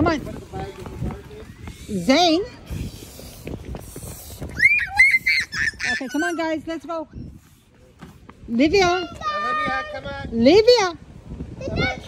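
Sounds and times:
faint outdoor noise: 0:00.0 - 0:12.0
child shrieking: 0:04.5 - 0:06.4.

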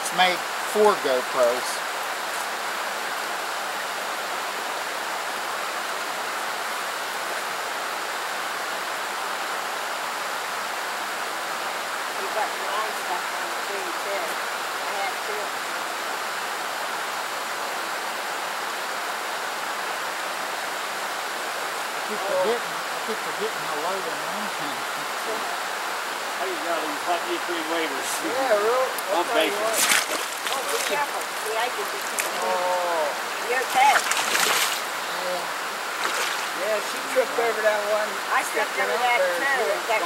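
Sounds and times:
creek water flowing over rocks: 0:00.0 - 0:40.0.

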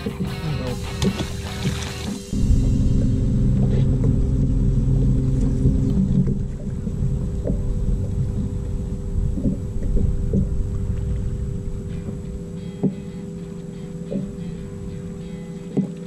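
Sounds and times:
deep rumble: 0:00.6 - 0:15.2.

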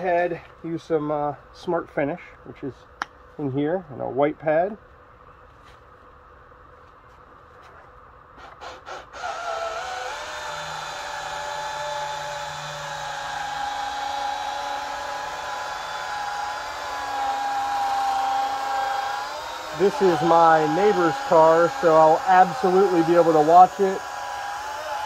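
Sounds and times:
rotary polisher motor whine: 0:09.1 - 0:25.0.

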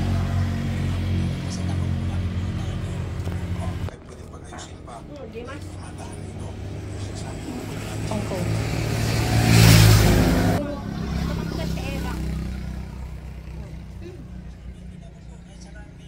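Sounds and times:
vehicle passing close by: 0:00.0 - 0:15.2.

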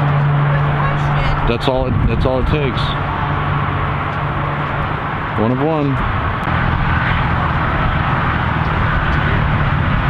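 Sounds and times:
low vehicle hum: 0:00.0 - 0:10.0.

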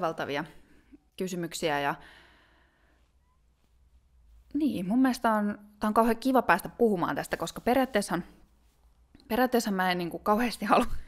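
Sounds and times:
soft breath: 0:02.0 - 0:04.5.

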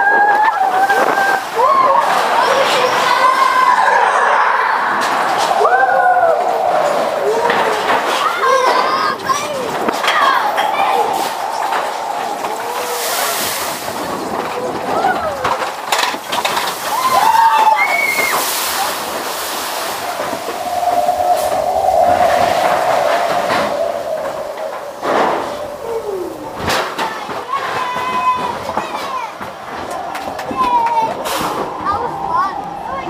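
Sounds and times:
riders whooping and yelling: 0:00.0 - 0:15.6, 0:16.6 - 0:26.6
roller coaster running on track: 0:00.0 - 0:33.0
wind rushing on microphone: 0:00.0 - 0:33.0.

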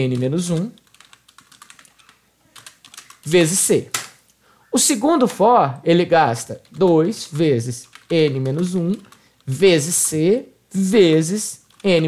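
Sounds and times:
faint keyboard typing: 0:00.0 - 0:04.4, 0:05.2 - 0:10.2, 0:11.1 - 0:12.0.

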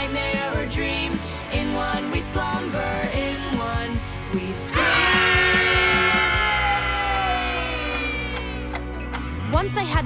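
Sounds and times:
pop rock backing track: 0:00.0 - 0:09.5
girl screaming: 0:04.8 - 0:08.6.

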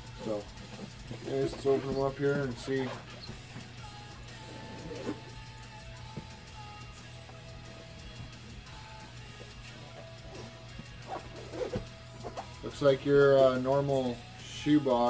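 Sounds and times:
faint background music: 0:00.0 - 0:15.0.

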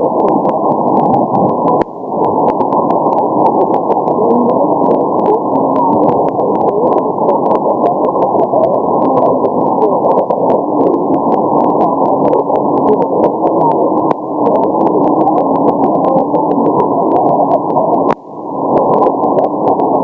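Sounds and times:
radio hiss: 0:00.0 - 0:20.0
static crackles: 0:00.0 - 0:20.0.

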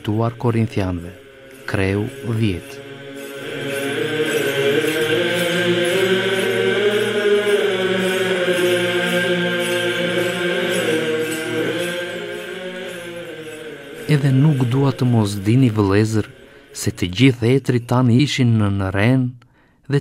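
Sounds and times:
slow chant: 0:00.0 - 0:18.2.

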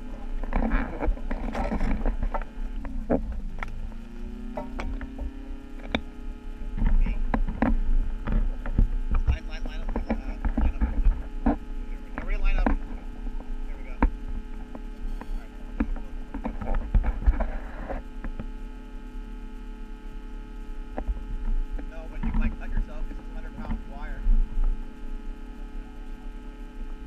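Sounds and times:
electrical hum: 0:00.0 - 0:27.0
low rumble on microphone: 0:00.0 - 0:27.0.

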